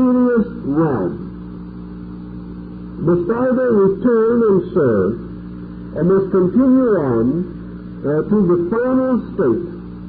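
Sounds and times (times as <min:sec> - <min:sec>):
tape hiss: 0:00.0 - 0:10.0
tape recording hum: 0:00.0 - 0:10.0.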